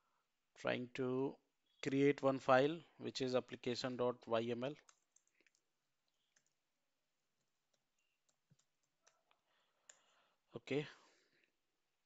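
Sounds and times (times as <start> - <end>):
computer keyboard clicks: 4.8 - 5.6, 6.2 - 6.6.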